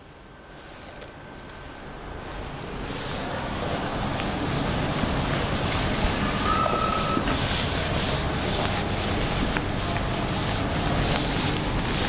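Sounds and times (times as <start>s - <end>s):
duster wiping whiteboard: 2.8s - 12.0s.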